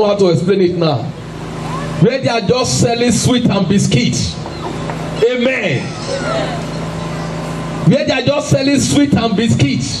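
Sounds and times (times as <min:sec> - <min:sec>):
steady low hum: 0:00.0 - 0:10.0
man speaking: 0:05.2 - 0:06.0.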